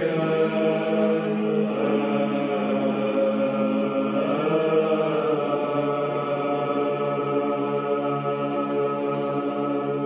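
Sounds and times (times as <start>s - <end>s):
voices chanting a held chord: 0.0s - 10.0s.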